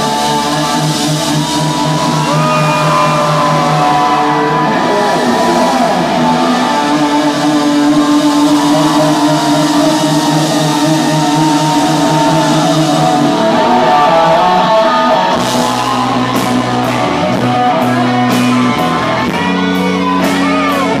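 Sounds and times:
electric guitar lead bending notes: 0.0 - 21.0
rock power ballad: 0.0 - 21.0.

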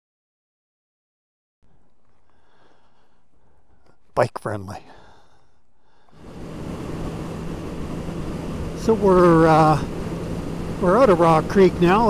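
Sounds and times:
motorcycle engine droning: 5.9 - 12.0
wind rush: 6.1 - 12.0.

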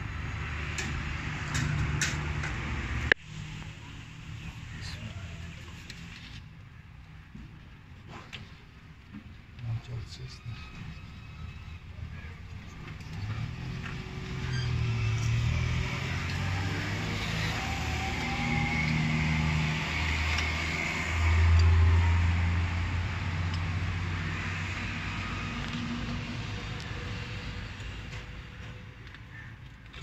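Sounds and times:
vehicle engine running: 12.2 - 29.5.

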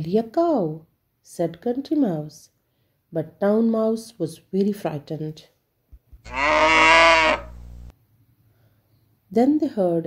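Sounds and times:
cow mooing: 6.3 - 7.9.

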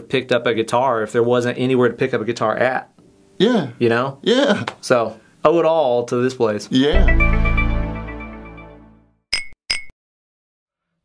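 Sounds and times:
guitar chord ringing: 7.0 - 9.0.

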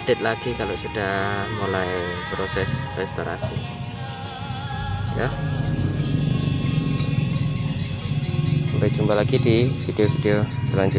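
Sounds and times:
low throb: 0.0 - 10.9
sustained music tones: 0.0 - 10.9.

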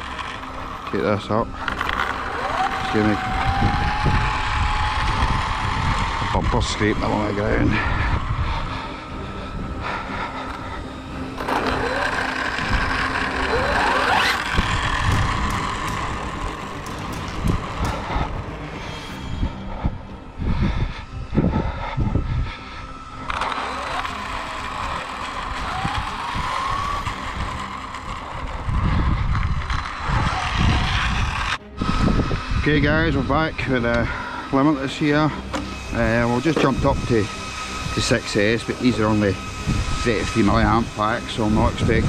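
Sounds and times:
electric motors whining: 0.0 - 42.0
road rumble: 0.0 - 42.0
wind: 0.0 - 42.0.

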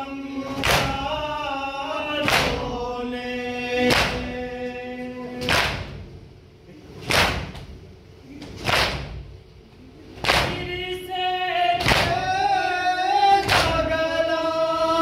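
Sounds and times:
men chanting a lament: 0.0 - 6.0, 10.2 - 15.0
chest beating slaps: 0.6 - 1.0, 2.2 - 2.8, 3.8 - 4.4, 5.4 - 6.1, 7.0 - 7.8, 8.5 - 9.4, 10.2 - 10.7, 11.8 - 12.3, 13.4 - 13.8.

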